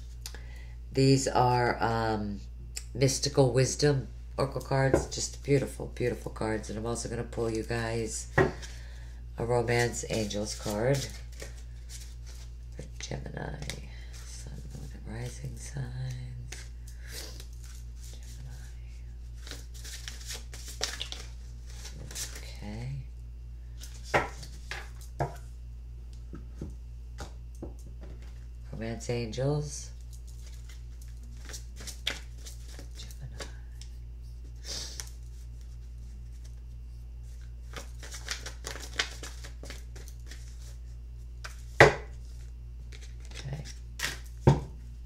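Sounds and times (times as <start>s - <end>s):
steady low hum: 0.0s - 45.0s
cards being shuffled: 9.7s - 18.6s, 19.2s - 22.5s, 30.0s - 33.9s, 37.2s - 40.8s, 41.4s - 44.5s.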